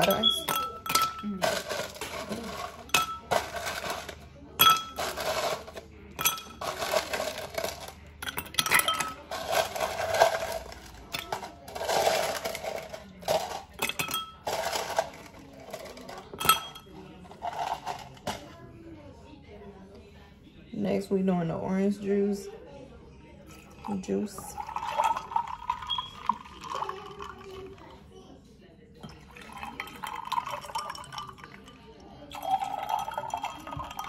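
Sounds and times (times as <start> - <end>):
ice clinking against glass: 0.0 - 18.4, 24.5 - 27.7, 29.0 - 34.0
ice cubes rattling in plastic cup: 0.0 - 18.4, 24.6 - 27.8, 29.4 - 31.6.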